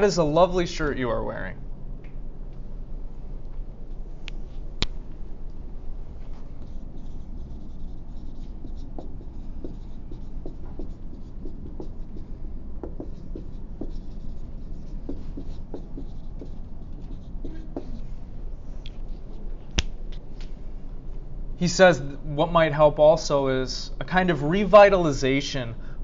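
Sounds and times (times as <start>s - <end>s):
pen scratching on paper: 6.6s - 18.0s.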